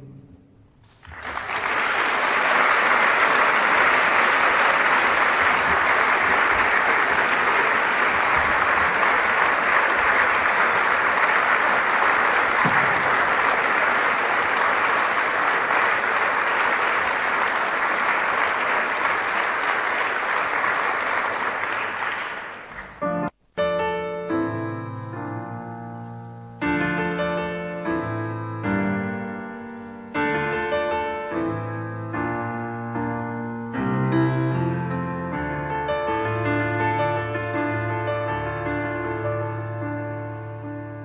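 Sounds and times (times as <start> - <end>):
audience applauding: 0.9 - 23.1.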